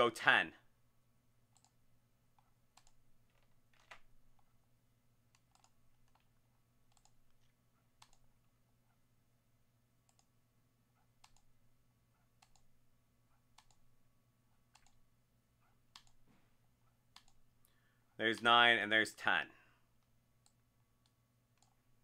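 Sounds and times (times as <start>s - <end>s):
faint mouse clicks: 1.5s - 4.5s, 5.3s - 6.3s, 6.9s - 8.3s, 10.1s - 10.3s, 11.2s - 11.5s, 12.4s - 12.7s, 13.5s - 13.8s, 14.7s - 15.0s, 15.9s - 16.4s, 17.1s - 18.5s, 20.0s - 21.8s.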